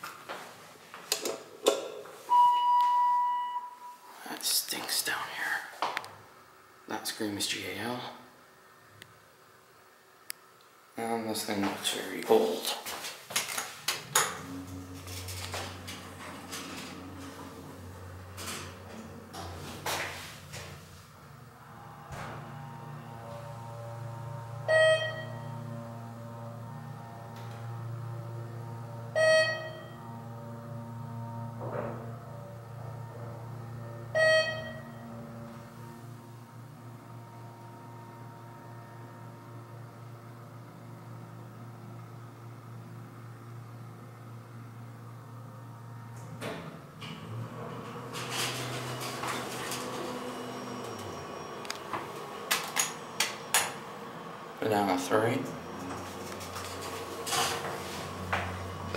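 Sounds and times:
elevator chimes: 2.3s - 4.1s, 21.7s - 36.1s, 49.3s - 57.2s
elevator doors sliding open: 13.5s - 36.2s, 46.2s - 58.9s
elevator pump motor hum: 13.8s - 58.9s
elevator stopping clunk: 13.9s - 36.4s, 45.8s - 54.5s, 55.4s - 58.9s.

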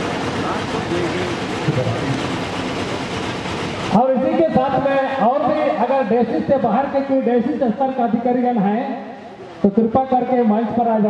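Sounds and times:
outdoor crowd hubbub: 0.0s - 11.0s.

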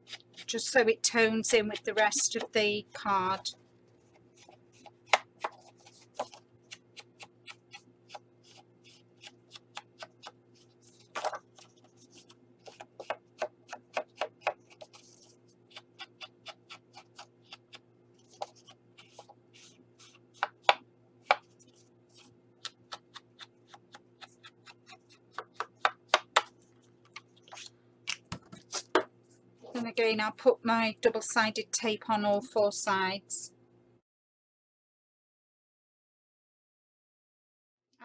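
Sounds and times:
ink pad tapping and scuffing card: 4.4s - 6.4s, 11.0s - 21.8s, 22.6s - 29.1s.

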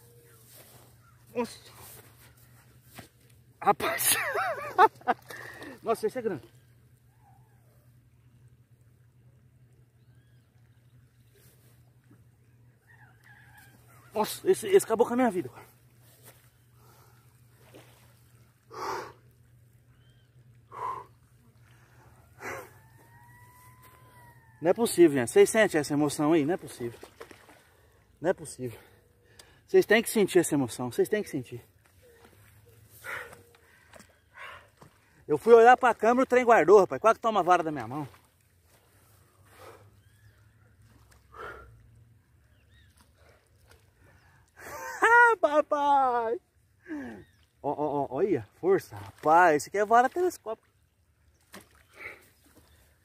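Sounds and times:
faint bird chirps: 9.8s - 14.2s, 19.8s - 21.3s, 38.8s - 41.1s, 42.4s - 43.4s, 47.1s - 47.6s.

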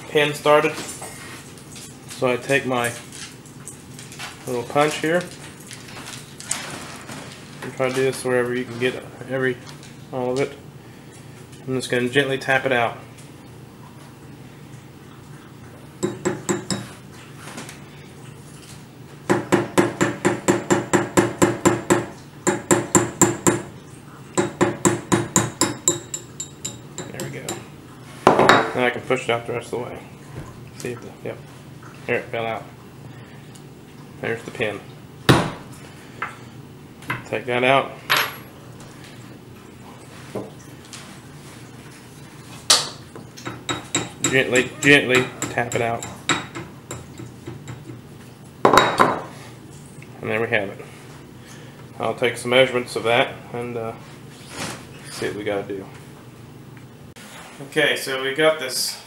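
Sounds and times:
hammer tapping metal punch: 24.4s - 27.6s.

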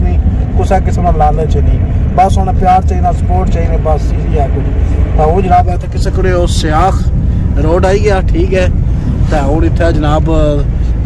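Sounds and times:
man talking: 0.0s - 10.9s
car cabin rumble: 0.0s - 11.0s.

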